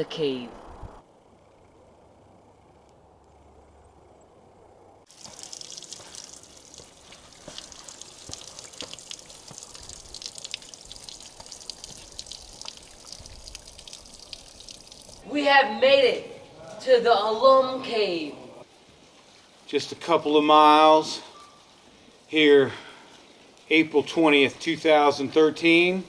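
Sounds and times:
steady wet hiss: 0:05.1 - 0:15.2, 0:18.6 - 0:26.0
water dripping onto rock: 0:05.1 - 0:15.2.

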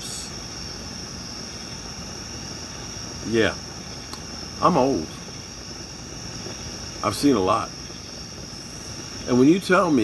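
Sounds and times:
crickets trilling: 0:00.0 - 0:10.0
gas flame hissing: 0:00.0 - 0:10.0.

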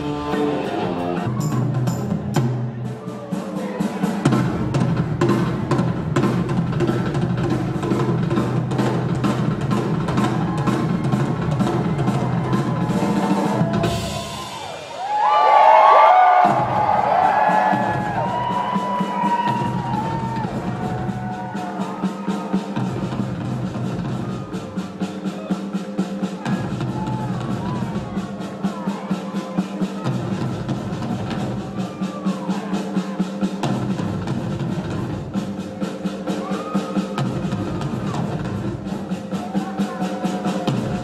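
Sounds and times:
rock drum kit solo: 0:00.0 - 0:41.0
audience cheering and whistling: 0:10.2 - 0:23.2, 0:36.3 - 0:37.2.

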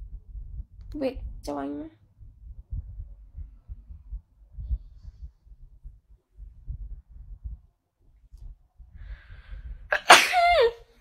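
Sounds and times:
woman sneezing: 0:09.9 - 0:10.8.

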